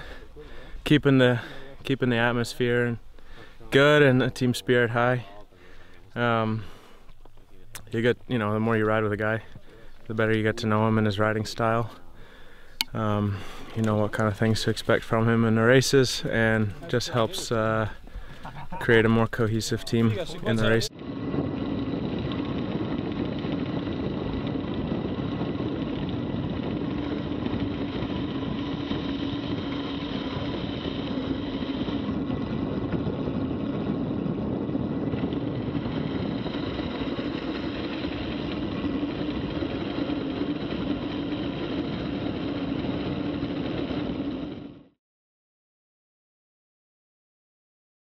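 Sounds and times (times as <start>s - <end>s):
wind rush on microphone: 19.5s - 44.9s
road noise: 19.9s - 44.8s.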